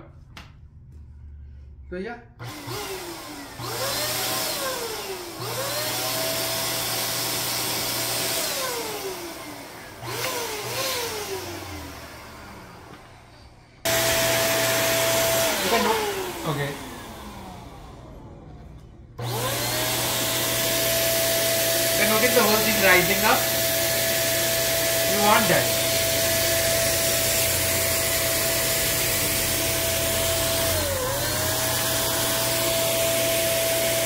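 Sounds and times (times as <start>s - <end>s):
electric balloon pump whining: 2.4s - 34.0s.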